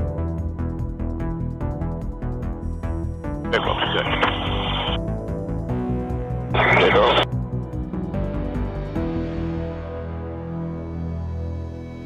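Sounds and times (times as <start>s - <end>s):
background music: 0.0s - 12.0s
thin radio-like voice: 3.5s - 5.0s, 6.6s - 7.2s.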